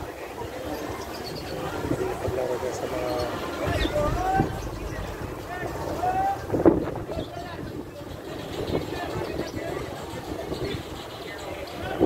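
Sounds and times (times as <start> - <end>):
wind buffeting microphone: 1.3 - 11.1
indistinct voices: 1.6 - 8.8
low steady rumble: 3.3 - 8.3
short loud sound: 3.6 - 7.5.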